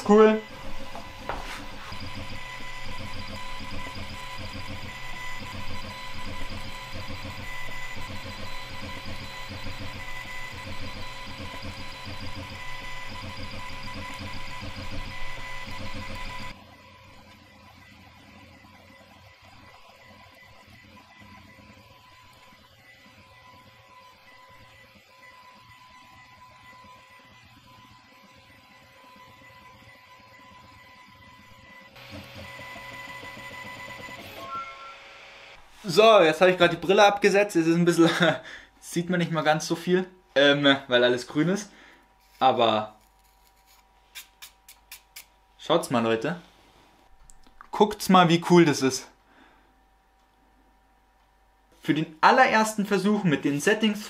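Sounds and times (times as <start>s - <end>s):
stepper motors pulsing hum: 0.0s - 35.7s
laser engraver whining: 0.0s - 37.5s.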